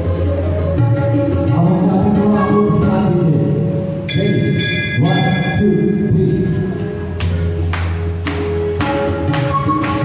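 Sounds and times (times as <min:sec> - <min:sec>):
bamboo flute: 0:00.0 - 0:03.4, 0:08.8 - 0:10.0
tabla drumming: 0:00.0 - 0:10.0.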